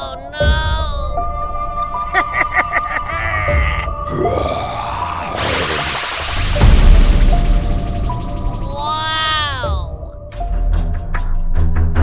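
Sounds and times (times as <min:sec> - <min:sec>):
background music: 0:00.0 - 0:12.0
grunt-like voice sliding pitch: 0:04.1 - 0:06.4.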